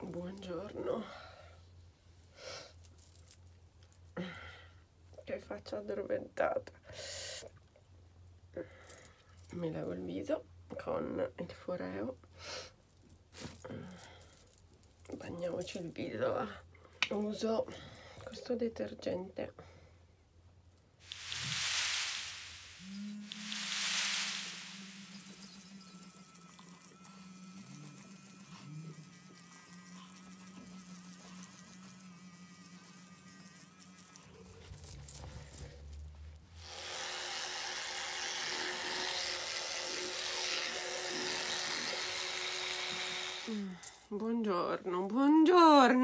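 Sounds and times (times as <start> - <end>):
water splashing: 21.0 - 26.8
facial brush buzzing: 21.0 - 35.8, 36.6 - 44.1
water running from a tap: 21.1 - 34.2.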